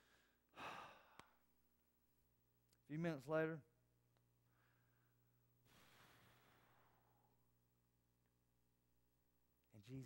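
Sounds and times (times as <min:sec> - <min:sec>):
man sighing: 0:00.1 - 0:01.2.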